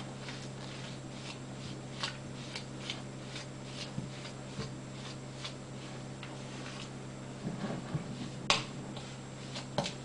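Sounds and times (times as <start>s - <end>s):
utensil stirring batter in glass bowl: 0.0s - 7.0s.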